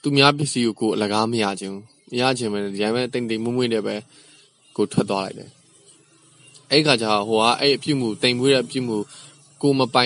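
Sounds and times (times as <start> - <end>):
man speaking: 0.0 - 4.2, 4.8 - 5.6, 6.6 - 10.0.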